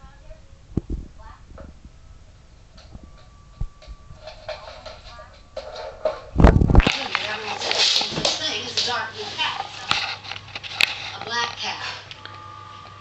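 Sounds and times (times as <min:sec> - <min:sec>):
people's voices in a small room: 0:00.0 - 0:12.6.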